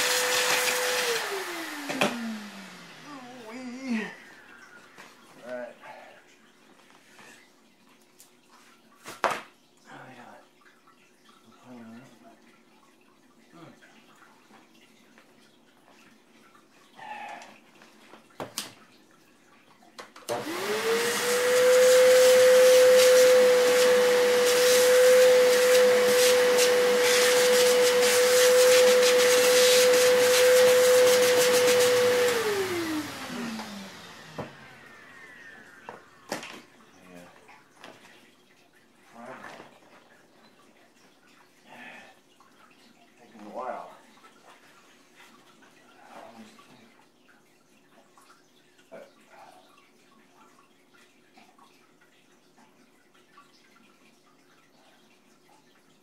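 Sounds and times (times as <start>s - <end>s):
vacuum cleaner motor whining: 0.0s - 4.9s, 20.3s - 36.7s.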